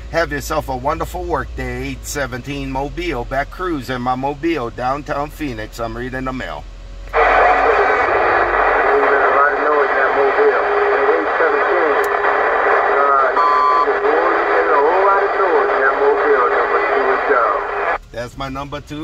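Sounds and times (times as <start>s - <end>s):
radio static: 7.1s - 18.0s
tinny garbled radio voice: 7.2s - 18.0s.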